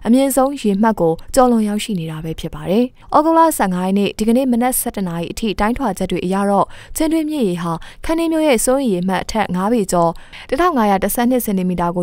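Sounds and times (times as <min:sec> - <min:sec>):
woman speaking: 0:00.0 - 0:12.0.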